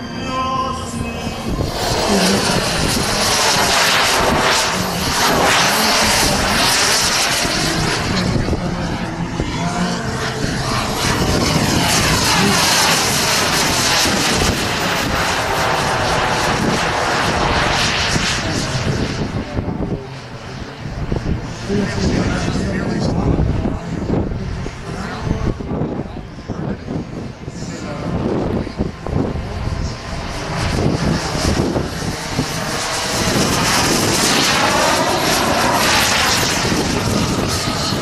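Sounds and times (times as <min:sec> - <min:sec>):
model jet turbine engine whoosh: 0:00.8 - 0:38.0.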